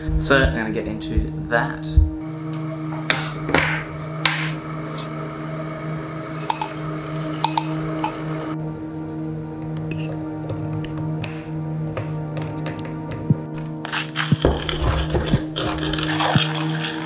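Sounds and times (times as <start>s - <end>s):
background music: 0.0s - 17.0s
coffee beans rattling into grinder: 6.4s - 8.5s.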